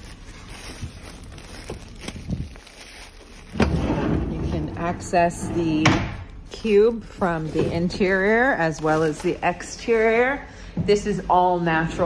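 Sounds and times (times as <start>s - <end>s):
metal door rumbling open: 3.6s - 6.2s.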